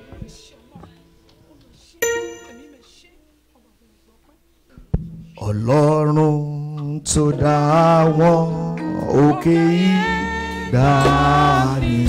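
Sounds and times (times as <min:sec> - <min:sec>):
man singing worship: 0:05.4 - 0:12.0.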